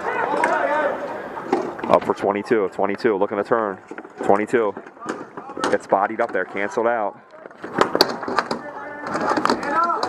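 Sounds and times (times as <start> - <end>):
voices calling out: 0.0 - 10.0
hockey sticks and ball clacking: 7.4 - 10.0.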